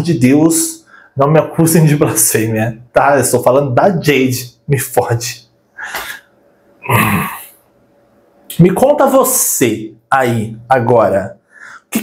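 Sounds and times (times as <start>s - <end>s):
man's breathy vocal sound: 11.5s - 12.0s.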